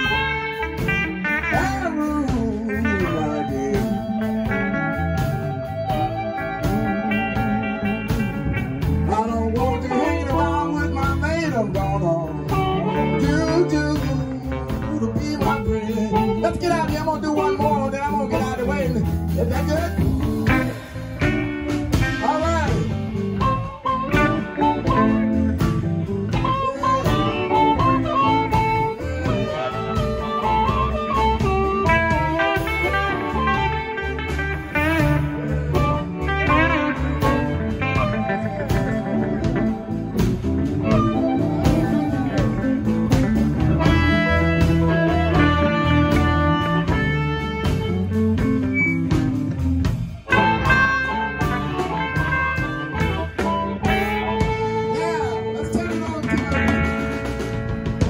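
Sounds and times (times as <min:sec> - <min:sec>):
amplified harmonica: 0:00.0 - 0:58.0
electric blues band playing: 0:00.0 - 0:58.0.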